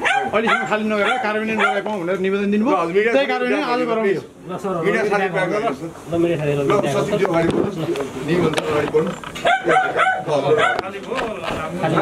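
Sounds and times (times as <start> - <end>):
dog barking: 0.0 - 1.9, 9.4 - 10.9
people's voices: 0.0 - 12.0.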